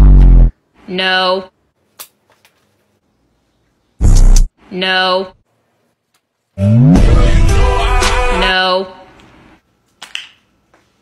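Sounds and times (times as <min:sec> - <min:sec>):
music: 0:06.6 - 0:08.5.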